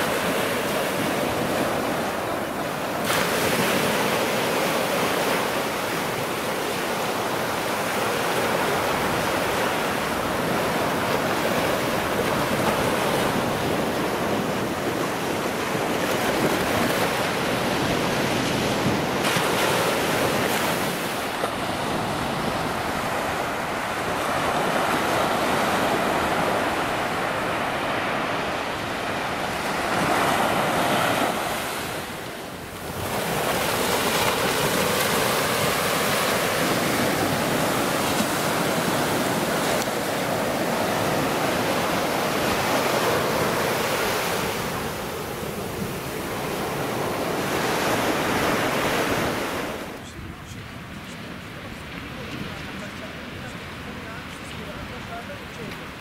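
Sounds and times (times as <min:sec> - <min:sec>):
waves washing up a beach: 0:00.0 - 0:56.0.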